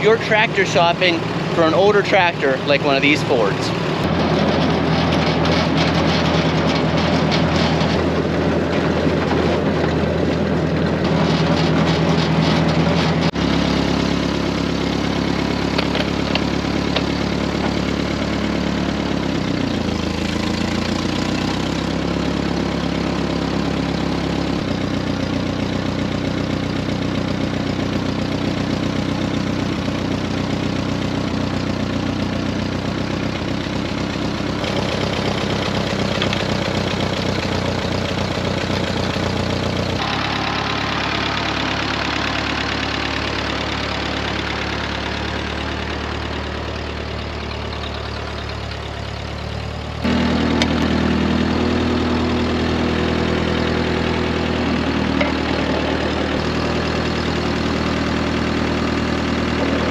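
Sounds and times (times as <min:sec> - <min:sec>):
tractor engine idling: 0:00.0 - 0:59.9.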